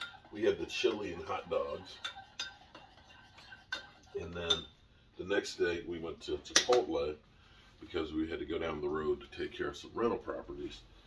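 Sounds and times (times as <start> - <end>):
spoon clinking against bowl: 0.0 - 0.3, 1.9 - 4.8
spoon stirring in bowl: 0.0 - 4.8.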